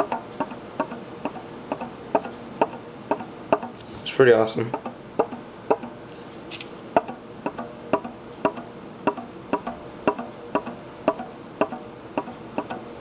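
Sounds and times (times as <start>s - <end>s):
fingers tapping a balloon: 0.0s - 3.8s, 4.7s - 5.9s, 7.0s - 12.8s.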